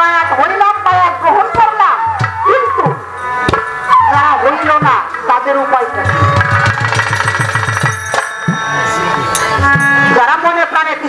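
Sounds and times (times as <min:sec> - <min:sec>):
held melody notes: 0:00.8 - 0:10.7
fast drum strokes: 0:06.0 - 0:10.2.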